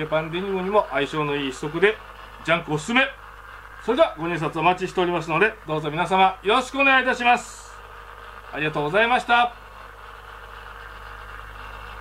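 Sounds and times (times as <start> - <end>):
motorized turntable hum and whir: 0.0 - 12.0.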